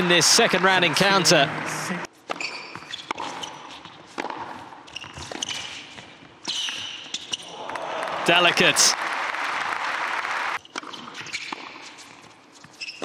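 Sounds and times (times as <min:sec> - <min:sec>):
shoes squeaking on court: 0:02.2 - 0:07.5, 0:10.6 - 0:13.0
racket hitting tennis ball: 0:04.1 - 0:05.7.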